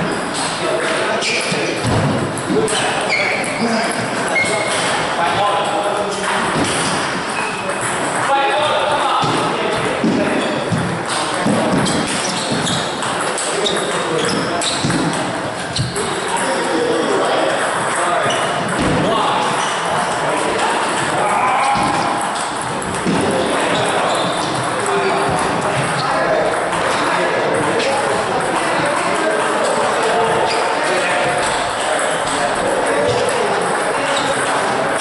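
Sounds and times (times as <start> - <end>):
chatter of voices in hall: 0.0 - 35.0
table tennis ball pings: 4.3 - 35.0.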